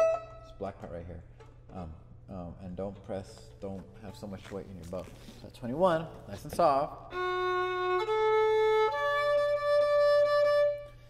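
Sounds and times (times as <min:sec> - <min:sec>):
violin playing long bowed notes: 0:00.0 - 0:00.9, 0:06.4 - 0:11.0.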